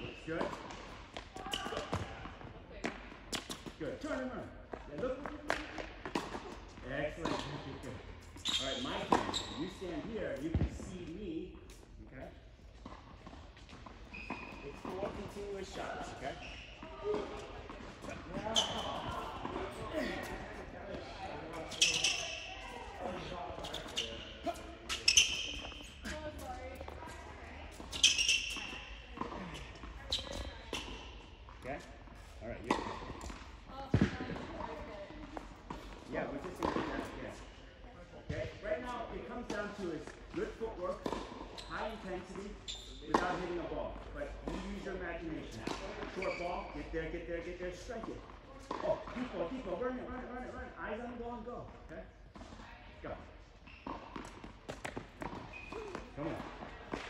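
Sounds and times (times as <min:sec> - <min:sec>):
tennis balls bouncing: 0:00.4 - 0:03.8, 0:04.6 - 0:08.4, 0:12.7 - 0:37.6, 0:38.2 - 0:46.4, 0:53.8 - 0:57.0
tennis balls struck by rackets: 0:05.2 - 0:07.8, 0:32.6 - 0:37.2, 0:40.9 - 0:41.5, 0:43.1 - 0:43.8, 0:54.0 - 0:57.0
short high squeaks: 0:08.4 - 0:09.7, 0:14.0 - 0:14.8, 0:21.7 - 0:22.7, 0:23.6 - 0:26.1, 0:27.9 - 0:29.0.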